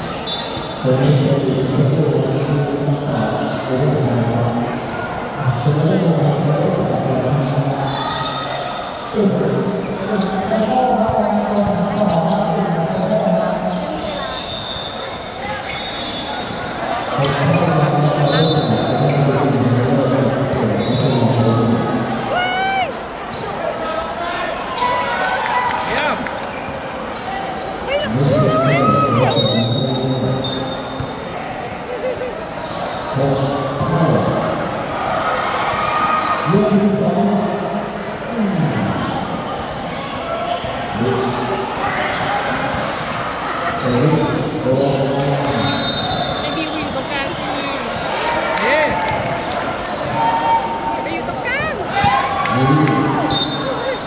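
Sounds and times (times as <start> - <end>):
sneaker squeaks: 0.0 - 2.5, 7.3 - 36.6, 38.5 - 54.0.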